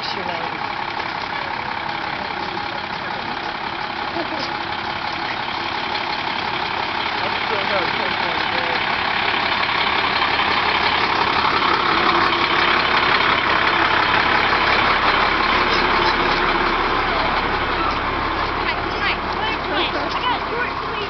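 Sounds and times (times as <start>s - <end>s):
crowd chatter: 0.0s - 21.0s
fire truck engine running: 0.0s - 21.0s.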